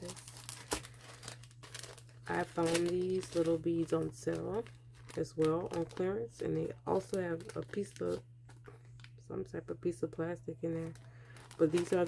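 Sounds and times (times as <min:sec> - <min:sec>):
plastic packaging crinkling: 0:00.0 - 0:09.2, 0:10.6 - 0:12.0.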